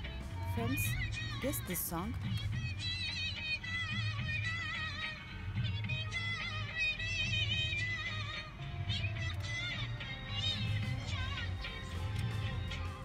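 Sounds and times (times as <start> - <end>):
pulsing low beat: 0.0 - 3.1, 10.4 - 13.0
woman singing with vibrato: 0.5 - 2.3.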